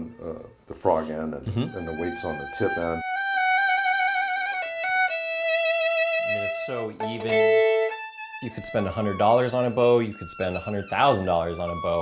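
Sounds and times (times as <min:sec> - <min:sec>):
violin sustained high notes: 0:01.5 - 0:12.0.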